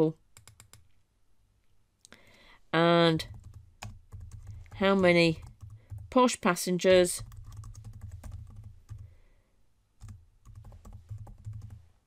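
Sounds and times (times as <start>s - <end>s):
computer keyboard typing: 0.4s - 0.9s, 3.2s - 9.1s, 10.0s - 11.9s.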